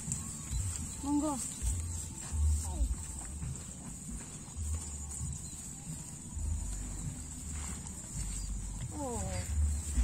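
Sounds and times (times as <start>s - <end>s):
footsteps of people walking: 0.0s - 10.0s
steady high-pitched hiss: 0.0s - 10.0s.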